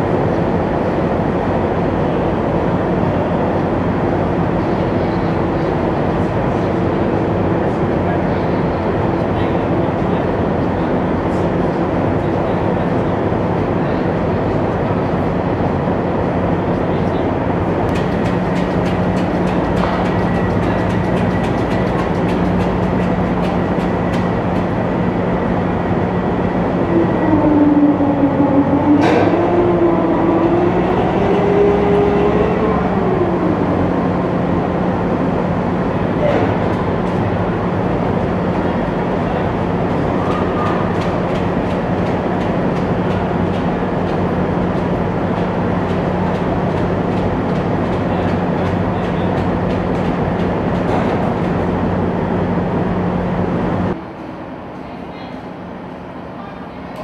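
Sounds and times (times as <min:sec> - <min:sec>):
diesel engine noise: 0:00.0 - 0:54.7
tracks clanking on steel deck: 0:17.9 - 0:24.9, 0:28.8 - 0:29.7
wavering whine: 0:24.0 - 0:36.1.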